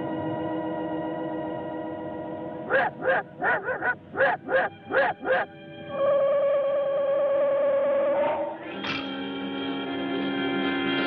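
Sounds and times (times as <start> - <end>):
steady warbling tone: 2.6 - 5.6.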